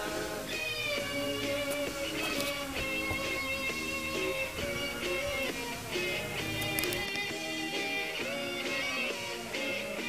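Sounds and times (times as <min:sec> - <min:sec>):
guitar-led song: 0:00.0 - 0:10.0.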